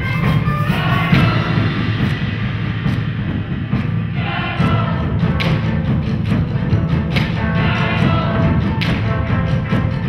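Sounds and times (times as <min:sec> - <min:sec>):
bass drum rumble with mallets: 0:00.0 - 0:10.0.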